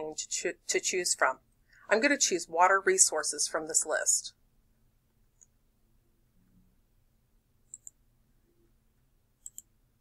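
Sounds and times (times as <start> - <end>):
computer mouse button clicks: 9.4 - 9.7.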